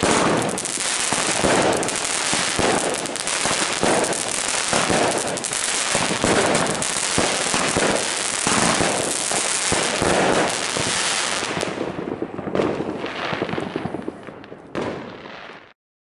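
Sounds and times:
firework cake bangs and crackle: 0.0s - 15.8s.

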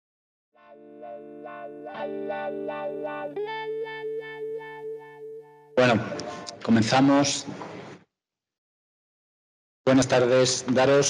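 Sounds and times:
plucked notes over held chords: 0.6s - 6.6s.

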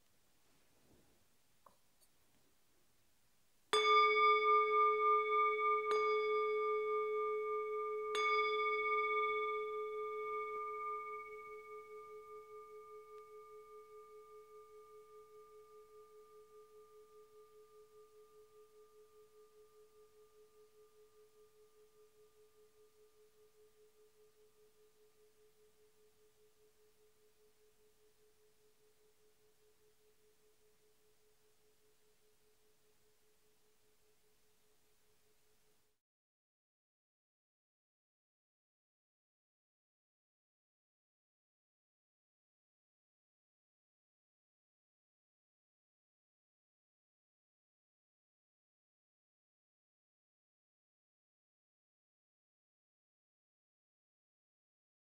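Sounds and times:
singing bowl ringing: 3.7s - 34.3s.

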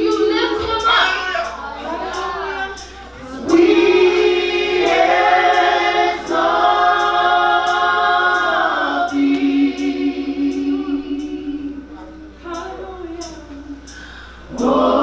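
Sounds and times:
women singing a worship chorus: 0.0s - 15.0s.

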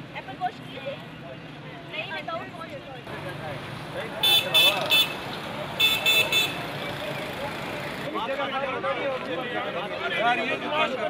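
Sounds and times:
high-pitched vehicle horn beeping: 4.2s - 5.2s, 5.8s - 6.6s.

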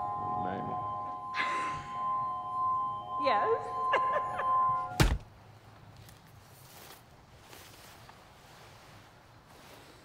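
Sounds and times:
faint low ambience: 0.0s - 10.0s
heavy thunk: 5.0s - 5.3s.

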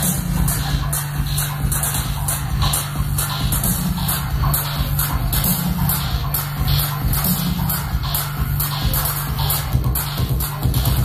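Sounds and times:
low synthesizer bass tone: 0.0s - 11.0s.

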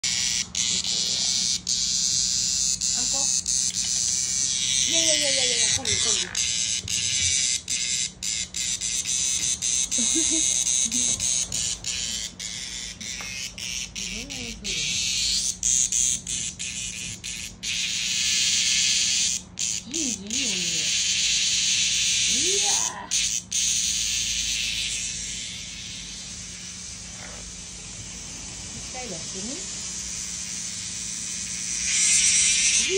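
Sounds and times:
cicada distress buzzing: 0.0s - 32.9s.

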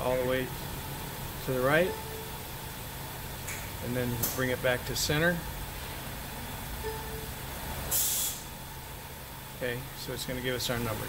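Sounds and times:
car engine idling: 0.0s - 11.0s
short sharp hiss: 7.9s - 8.5s.

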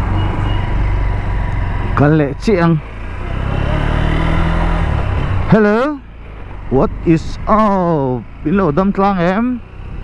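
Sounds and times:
road and wind noise: 0.0s - 10.0s
motorcycle engine running: 0.6s - 10.0s.

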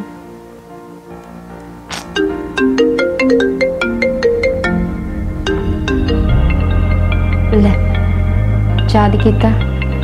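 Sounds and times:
phone ringtone marimba melody: 2.2s - 4.8s.

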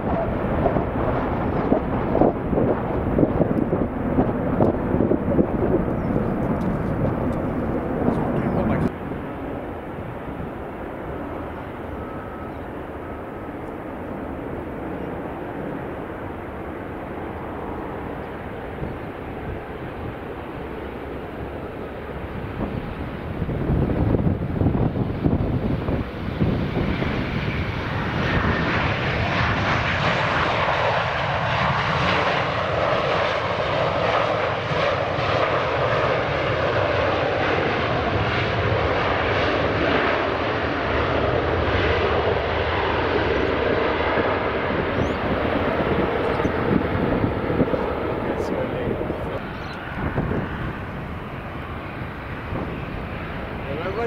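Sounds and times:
jet engines roaring: 0.0s - 54.0s.

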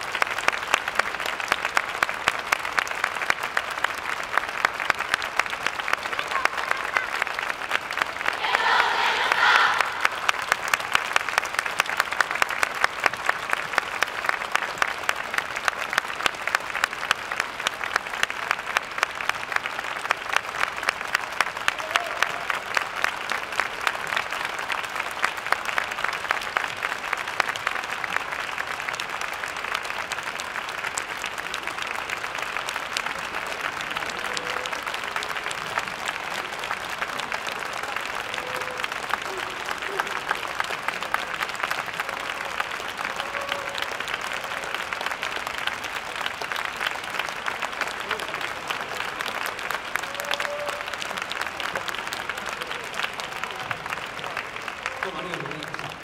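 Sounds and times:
audience applauding: 0.0s - 56.0s.

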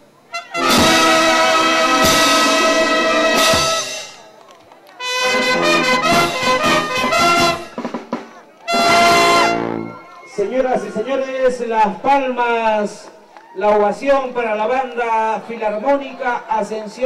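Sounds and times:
brass band playing: 0.2s - 4.3s, 5.0s - 10.1s
bass drum and cymbals: 0.5s - 4.2s, 5.2s - 9.8s.

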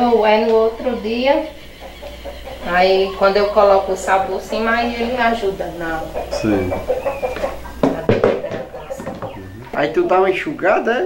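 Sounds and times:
voice fragments: 2.6s - 5.9s.

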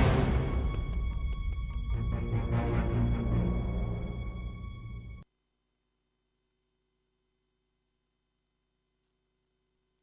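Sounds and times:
faint steady hum: 4.4s - 10.0s.

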